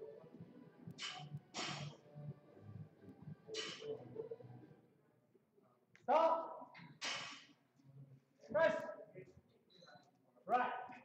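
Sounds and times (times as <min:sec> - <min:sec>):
short hiss: 0:01.0 - 0:01.9.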